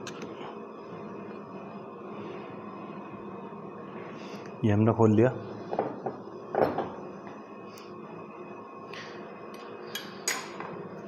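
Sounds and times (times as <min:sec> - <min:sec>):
steady faint hum: 0:00.0 - 0:11.0.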